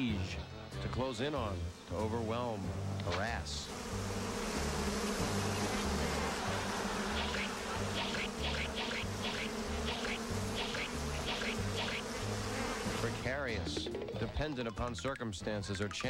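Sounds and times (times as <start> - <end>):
insects buzzing: 0.0 - 14.3.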